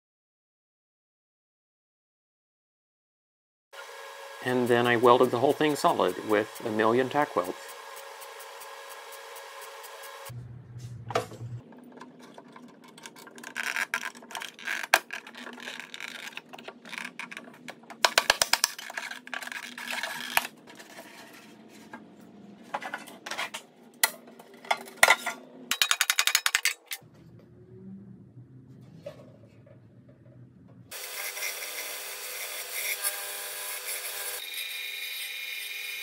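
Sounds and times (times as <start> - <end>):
welder crackling: 4.4 - 10.3.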